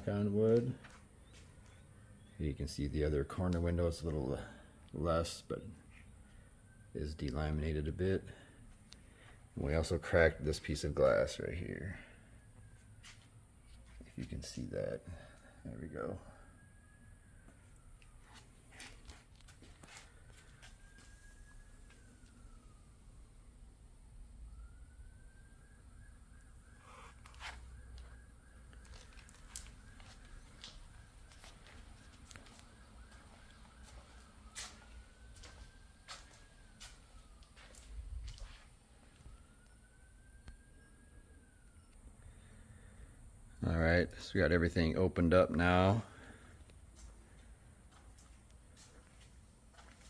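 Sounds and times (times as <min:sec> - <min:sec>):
faint high rising tone: 0:04.0 - 0:44.0.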